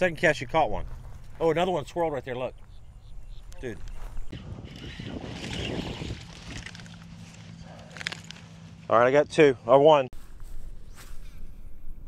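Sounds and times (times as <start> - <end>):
wind noise on microphone: 3.2 - 7.0.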